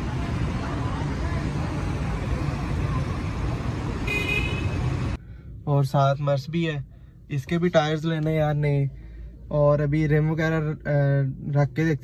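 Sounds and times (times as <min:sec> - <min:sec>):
low rumble of traffic: 0:00.0 - 0:12.0.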